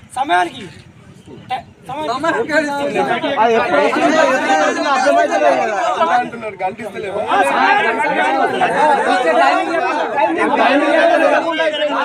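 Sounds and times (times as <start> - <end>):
men talking at once: 0.0 - 12.0.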